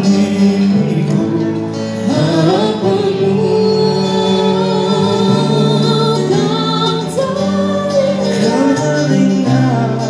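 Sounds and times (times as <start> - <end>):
live band with keyboard and guitars: 0.0 - 10.0
woman singing into a microphone: 0.0 - 10.0.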